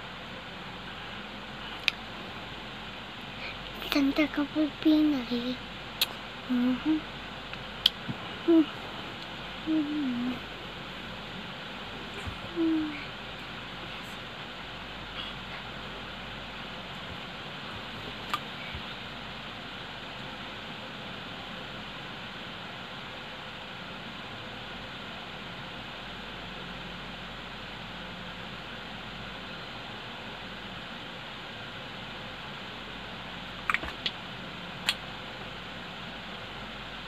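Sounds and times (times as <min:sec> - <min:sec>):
electric fan whooshing: 0:00.0 - 0:26.9.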